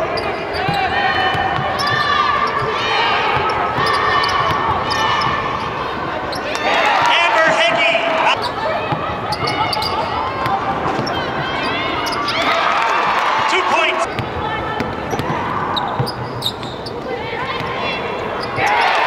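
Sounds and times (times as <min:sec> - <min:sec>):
sneakers squeaking: 0:00.0 - 0:19.0
voices of players and fans: 0:00.0 - 0:19.0.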